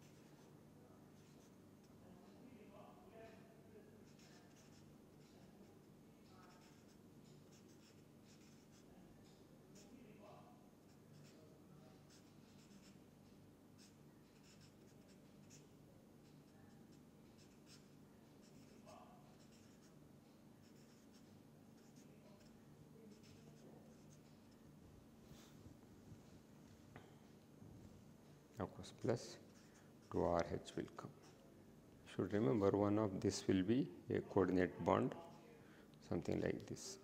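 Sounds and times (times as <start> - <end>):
marker scratching on paper: 0.0 - 0.5, 4.0 - 10.0, 10.9 - 13.1, 13.8 - 20.0, 20.6 - 24.6.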